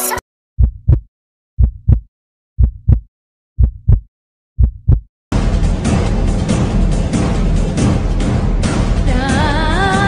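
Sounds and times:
heartbeat thumps: 0.6s - 5.1s.

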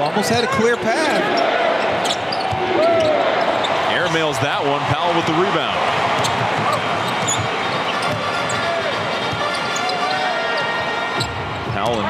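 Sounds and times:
shoe squeaks: 6.7s - 8.8s, 9.4s - 10.3s.

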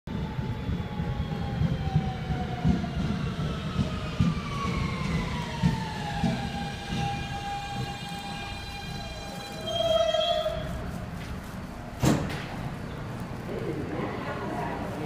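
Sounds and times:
subway train propulsion whine: 0.1s - 15.0s
wheels rumbling on track: 0.2s - 15.0s.

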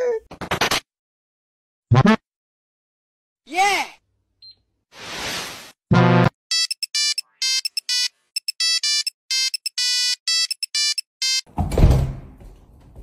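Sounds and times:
electronic beeping melody: 6.0s - 11.5s.

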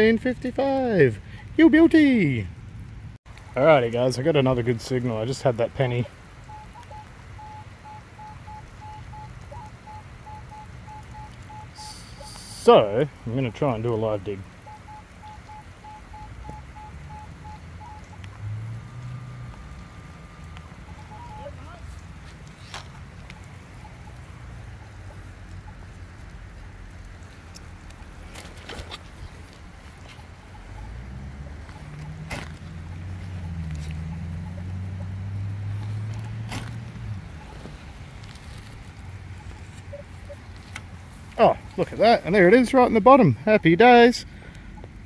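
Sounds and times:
metal detector beeps: 6.5s - 12.7s, 14.6s - 18.2s, 20.9s - 21.8s.

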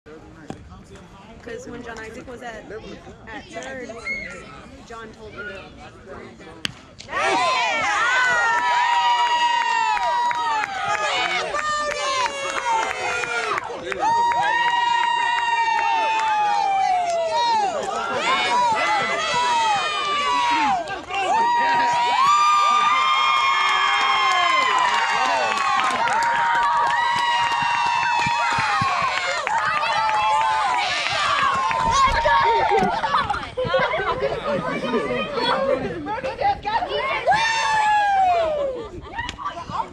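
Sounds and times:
boys talking and shouting: 15.2s - 39.9s.

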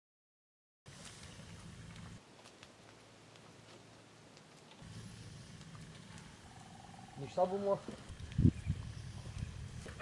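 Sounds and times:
campfire flames rumbling: 0.9s - 10.0s
fire crackling: 0.9s - 10.0s.

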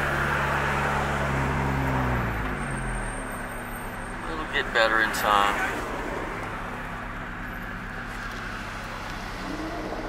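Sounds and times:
car engine drone: 0.0s - 10.0s.

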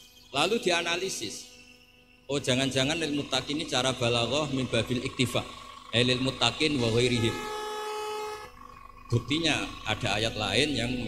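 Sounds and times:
horn-like pitched tone: 6.1s - 11.0s.

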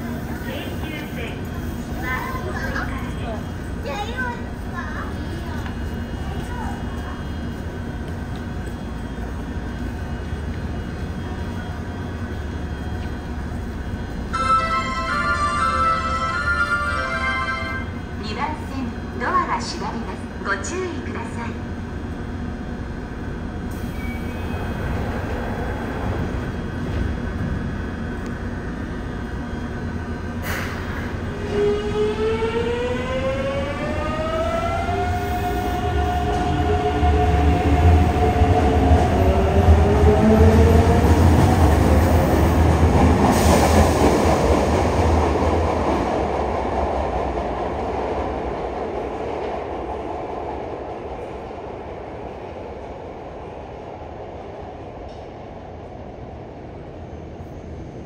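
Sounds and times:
rumble of train wheels: 0.0s - 58.0s.

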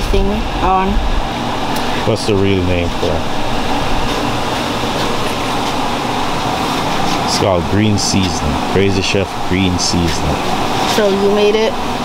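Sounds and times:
loud steady background noise: 0.0s - 12.0s.

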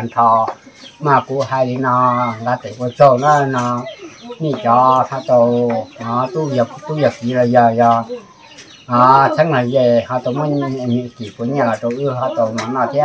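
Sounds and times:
man chanting: 0.0s - 8.3s, 8.9s - 13.0s.

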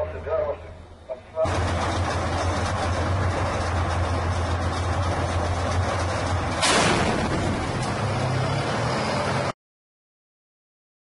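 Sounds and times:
tank engine droning: 0.0s - 9.6s
tank gun firing: 6.5s - 8.0s.

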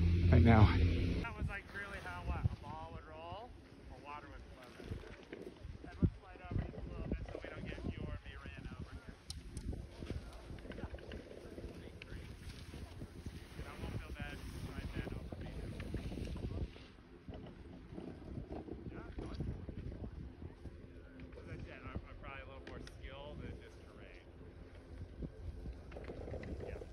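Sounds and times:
faint voices: 0.0s - 26.9s
wind buffeting microphone: 0.0s - 26.9s.

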